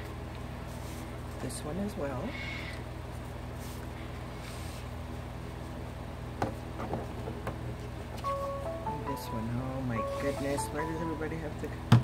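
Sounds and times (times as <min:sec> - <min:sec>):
phone message alert melody: 0:08.3 - 0:11.5.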